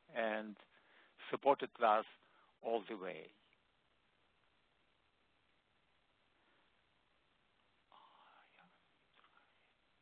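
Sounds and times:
faint person whispering: 0:07.8 - 0:10.0.

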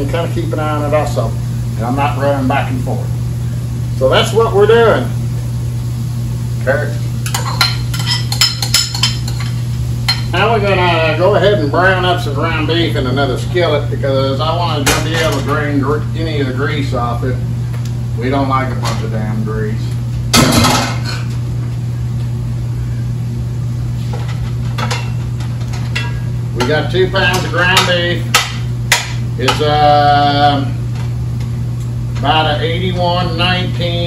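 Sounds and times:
cookware clanking: 0:07.2 - 0:10.3.

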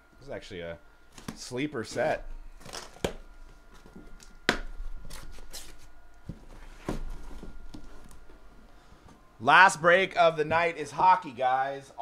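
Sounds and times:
cardboard scraping and rustling: 0:04.8 - 0:08.4.

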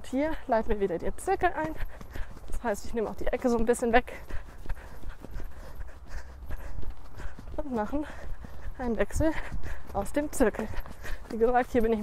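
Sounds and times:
hooves trotting on wet sand: 0:00.0 - 0:12.0.

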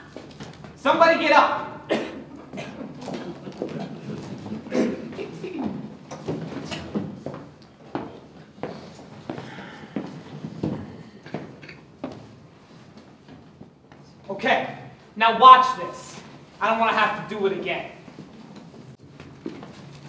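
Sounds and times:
footsteps on stage floor: 0:00.0 - 0:00.9, 0:02.2 - 0:14.2, 0:17.9 - 0:20.0.

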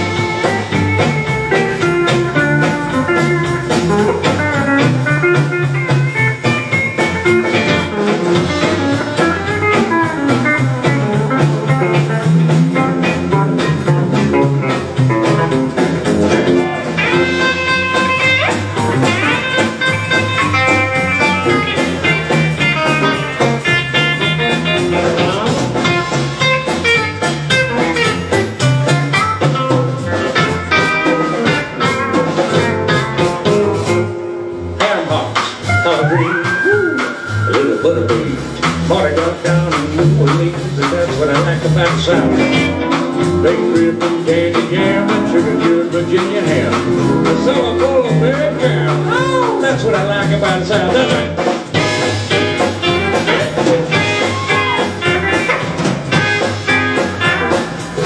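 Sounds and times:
pedal steel guitar: 0:00.0 - 0:34.8, 0:42.0 - 0:58.0
drums swing rhythm: 0:00.0 - 0:58.0
electric guitar: 0:00.0 - 0:58.0
upright bass: 0:00.0 - 0:58.0.

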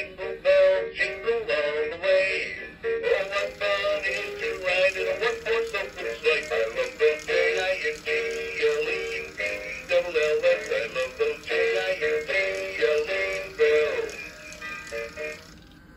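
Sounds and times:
toy playing christmas song with singing: 0:00.0 - 0:15.9.

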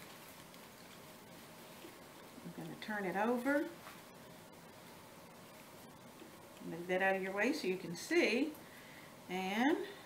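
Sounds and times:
faint rustles of silk flowers: 0:00.0 - 0:06.5.

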